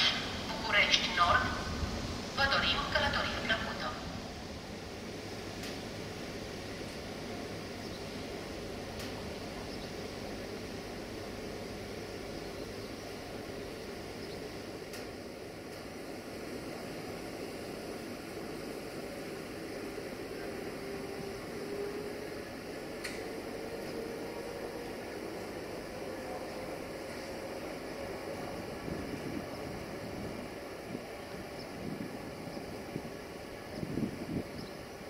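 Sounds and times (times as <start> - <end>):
train rumbling hiss: 0.0 - 35.0.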